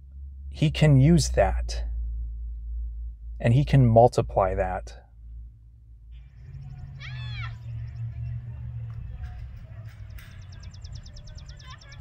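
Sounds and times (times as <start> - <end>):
low outdoor rumble: 0.0 - 12.0
child calling high-pitched: 7.0 - 7.6.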